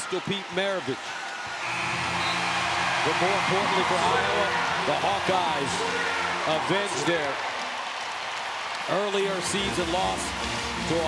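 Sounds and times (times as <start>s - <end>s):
crowd noise: 0.0s - 11.0s
buzzing arena horn: 1.6s - 6.5s.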